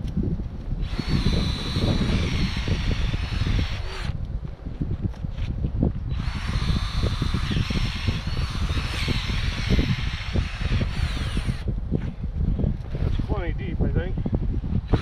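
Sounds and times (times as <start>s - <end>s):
cordless drill boring into ground: 0.8s - 4.2s, 6.1s - 11.7s.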